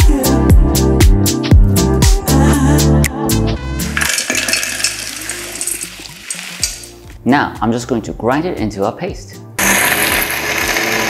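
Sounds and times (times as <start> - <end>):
nut pieces rattling into metal bowl: 4.0 - 6.9.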